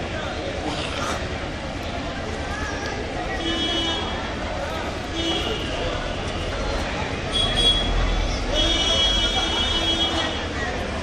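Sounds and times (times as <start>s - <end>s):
crowd voices: 0.0s - 11.0s
traffic noise: 0.0s - 11.0s.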